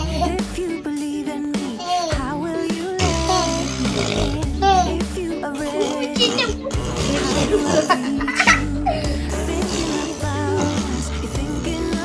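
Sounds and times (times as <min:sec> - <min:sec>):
background music: 0:00.0 - 0:12.0
young child giggling: 0:06.0 - 0:09.0.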